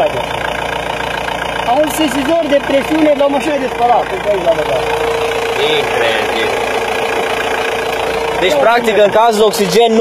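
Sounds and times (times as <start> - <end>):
diesel car engine idling: 0.0 - 10.0
steady high hum: 4.2 - 10.0.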